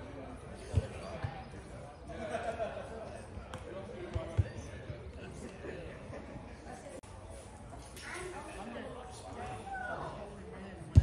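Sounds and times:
faint distant voices: 0:00.0 - 0:11.0.

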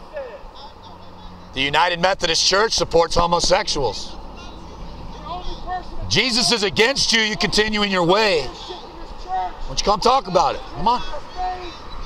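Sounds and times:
vehicle passing on street: 0:00.0 - 0:12.0.

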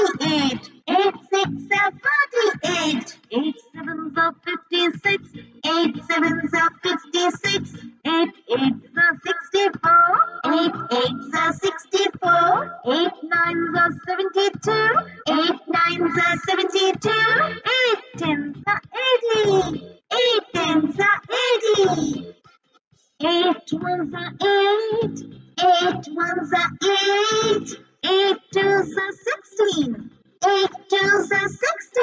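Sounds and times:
children's song with sung voices: 0:00.0 - 0:22.3, 0:23.2 - 0:32.0.

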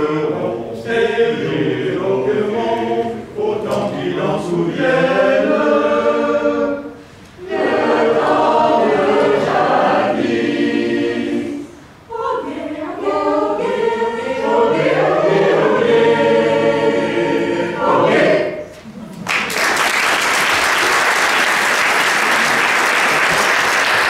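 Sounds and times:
mixed choir singing a cappella: 0:00.0 - 0:18.8
singers breathing: 0:06.9 - 0:07.4.

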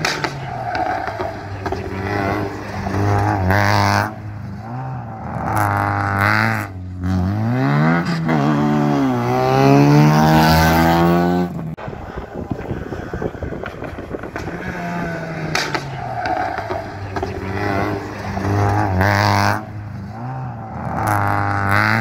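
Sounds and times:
car engine revving through gears: 0:00.0 - 0:11.8, 0:14.3 - 0:22.0.

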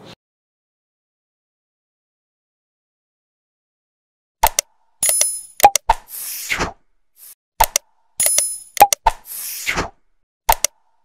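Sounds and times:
sharp clicks: 0:04.4 - 0:05.9, 0:07.6 - 0:09.1, 0:10.5 - 0:10.8.

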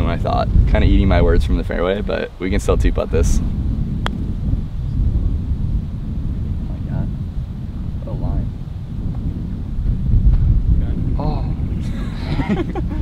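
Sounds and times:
wind buffeting microphone: 0:00.0 - 0:13.0
putter striking golf ball: 0:04.0 - 0:04.3.

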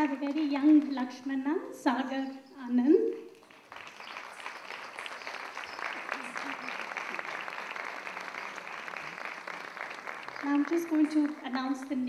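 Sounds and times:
audience applause: 0:03.4 - 0:12.0.

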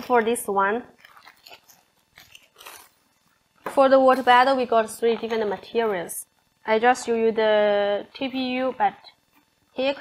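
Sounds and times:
thin plastic crinkling: 0:00.9 - 0:03.4.

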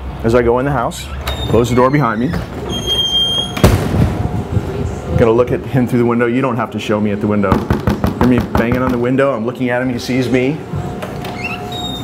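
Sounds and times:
brief high squeak: 0:01.2 - 0:03.6, 0:11.3 - 0:12.0
door shutting with a bang: 0:03.3 - 0:04.3.

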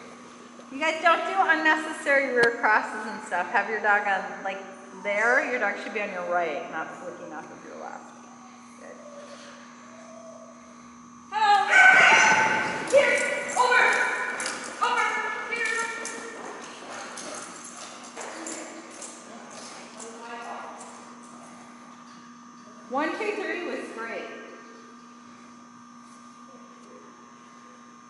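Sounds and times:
woman calling excitedly: 0:11.3 - 0:16.0.

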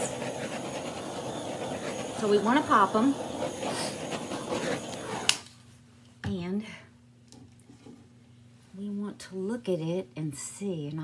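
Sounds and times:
torch flame hissing: 0:00.0 - 0:05.5.

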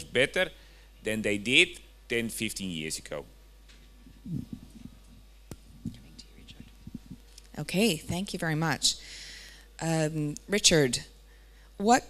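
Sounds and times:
steady low hum: 0:00.0 - 0:12.0
microphone click: 0:03.7 - 0:08.2
microphone handling noise: 0:03.8 - 0:07.4.

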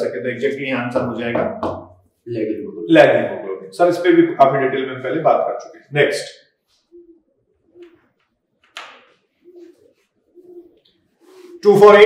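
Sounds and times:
bird cooing: 0:06.7 - 0:08.2, 0:09.1 - 0:12.0.

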